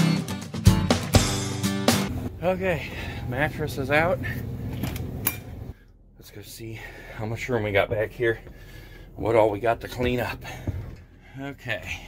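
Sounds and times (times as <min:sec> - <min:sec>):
outdoor background hum: 0:02.1 - 0:12.0.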